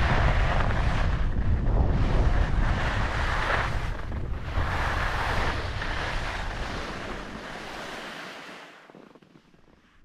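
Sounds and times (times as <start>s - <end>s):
wind buffeting microphone: 0.0s - 10.0s
skis hissing over snow: 2.1s - 10.0s.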